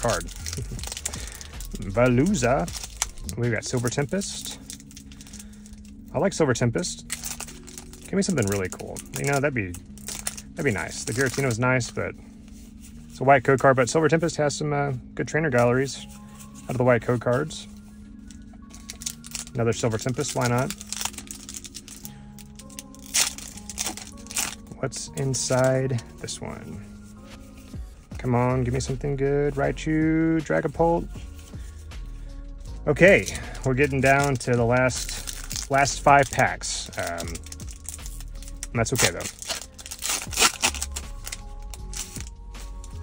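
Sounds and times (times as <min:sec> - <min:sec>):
foil wrapper tearing and crinkling: 0:00.0 - 0:06.1, 0:07.0 - 0:11.6, 0:18.2 - 0:24.6, 0:33.2 - 0:42.9
background music: 0:00.0 - 0:43.0.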